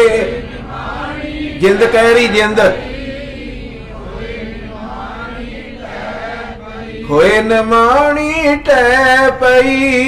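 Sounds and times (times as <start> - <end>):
faint group voices chanting: 0.3 - 7.2.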